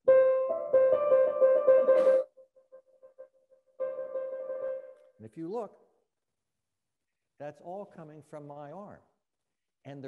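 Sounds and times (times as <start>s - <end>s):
grand piano trill: 0.0s - 2.3s, 3.8s - 5.0s.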